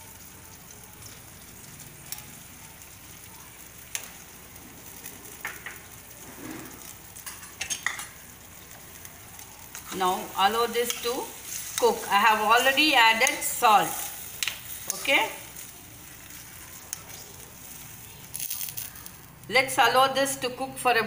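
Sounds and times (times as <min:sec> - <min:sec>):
vegetables sizzling in oil: 0:00.0 - 0:21.0.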